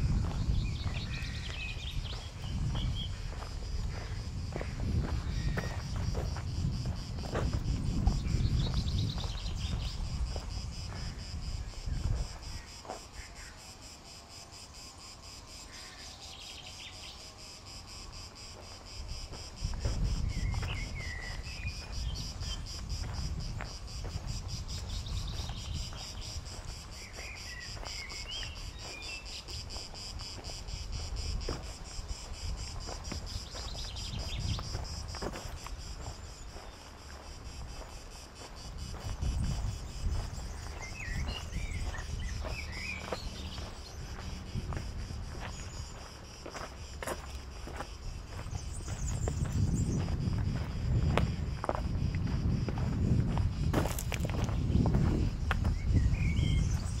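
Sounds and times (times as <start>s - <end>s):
wind rumble on microphone: 0.0s - 12.8s, 18.9s - 57.0s
footsteps on dirt path: 0.0s - 13.6s, 18.3s - 57.0s
cicadas chorus: 0.0s - 57.0s.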